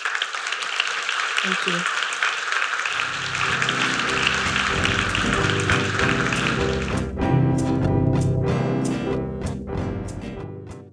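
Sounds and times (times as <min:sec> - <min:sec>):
audience applauding: 0:00.0 - 0:07.2
instrumental music: 0:03.1 - 0:10.9.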